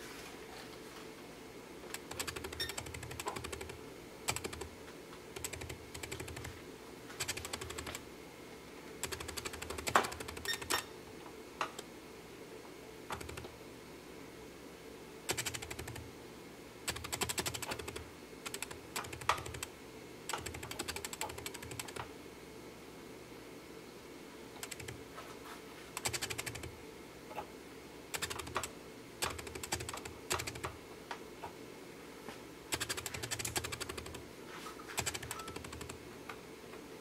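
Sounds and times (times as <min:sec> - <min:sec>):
bursts of fast clicking: 0:01.9 - 0:04.7, 0:05.4 - 0:06.6, 0:07.2 - 0:08.0, 0:09.0 - 0:10.8, 0:13.1 - 0:13.5, 0:15.3 - 0:16.1, 0:16.9 - 0:19.7, 0:20.3 - 0:22.1, 0:24.6 - 0:25.0, 0:26.0 - 0:26.7, 0:28.1 - 0:30.8, 0:32.7 - 0:34.2, 0:35.0 - 0:36.0.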